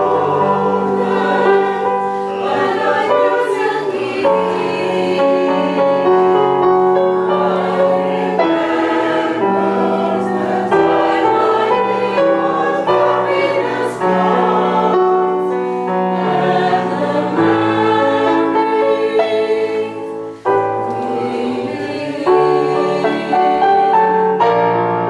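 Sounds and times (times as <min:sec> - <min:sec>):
mixed choir singing show tune: 0:00.0 - 0:24.4
piano accompaniment: 0:00.0 - 0:25.0.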